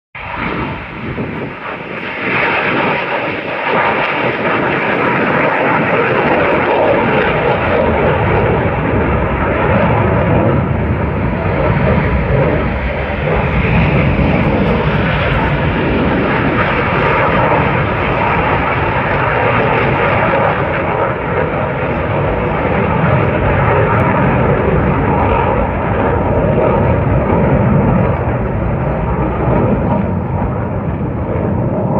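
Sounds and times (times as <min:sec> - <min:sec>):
aircraft engine noise: 0:00.2 - 0:31.9.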